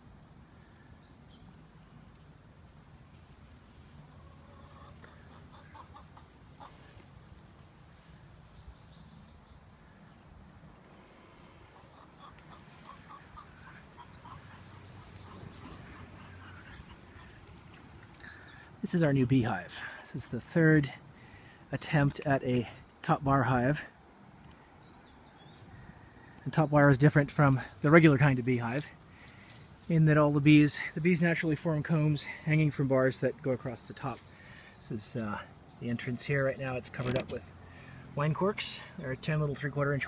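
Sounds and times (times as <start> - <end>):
faint bird chirping: 0.6 - 2.4, 4.0 - 19.0, 24.5 - 28.5
hens clucking faintly: 3.8 - 7.2, 10.8 - 17.9
short hen calls: 4.0 - 7.0, 11.0 - 17.5.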